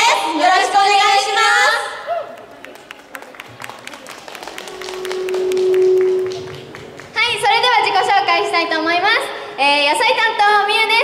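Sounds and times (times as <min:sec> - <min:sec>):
audience clapping: 0:02.3 - 0:07.4
steady tone: 0:04.2 - 0:11.0.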